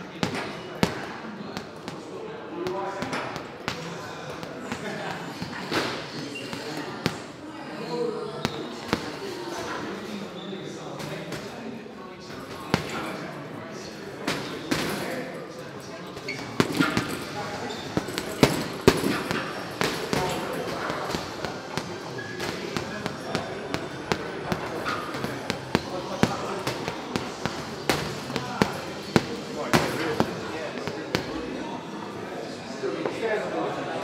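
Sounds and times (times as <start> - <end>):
gloves punching heavy bag: 18.0 - 31.3.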